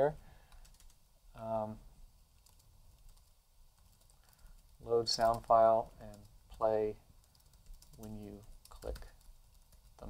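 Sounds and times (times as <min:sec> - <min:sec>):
faint keyboard typing: 0:00.4 - 0:01.0, 0:02.3 - 0:10.0.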